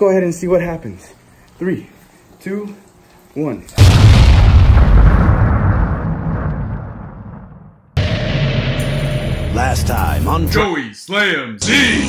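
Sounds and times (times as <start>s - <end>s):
explosion boom rumbling: 3.8s - 9.8s.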